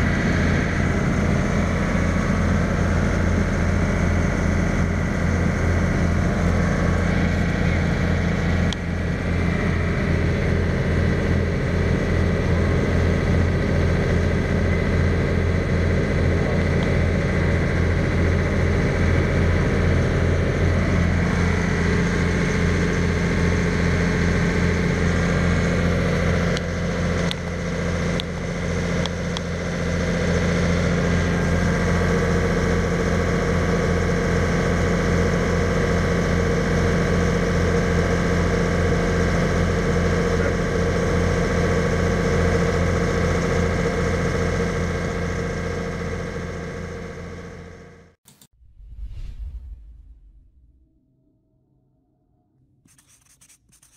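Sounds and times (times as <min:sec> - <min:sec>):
diesel engine running: 0:00.0 - 0:48.2.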